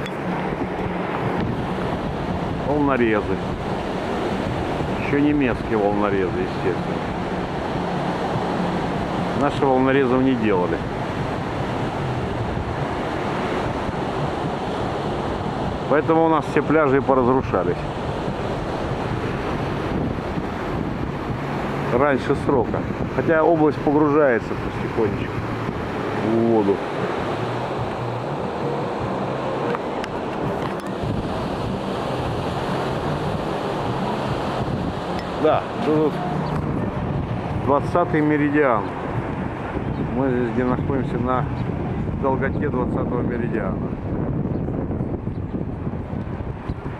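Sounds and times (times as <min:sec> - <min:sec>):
surf washing onto beach: 0:00.0 - 0:42.2
wind blowing across microphone: 0:00.0 - 0:46.9.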